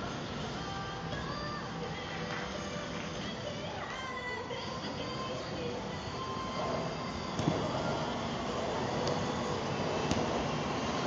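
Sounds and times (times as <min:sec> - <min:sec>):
steady rumbling noise: 0:00.0 - 0:11.0
ball kicked on artificial turf: 0:07.4 - 0:08.0, 0:10.0 - 0:10.6.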